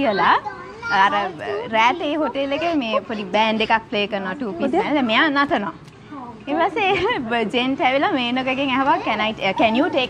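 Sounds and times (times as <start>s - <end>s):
woman talking animatedly: 0.0s - 5.8s, 6.5s - 10.0s.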